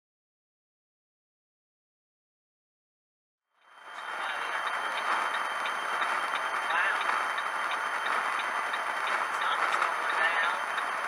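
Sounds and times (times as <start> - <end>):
road and engine noise in cab: 4.0 - 11.0.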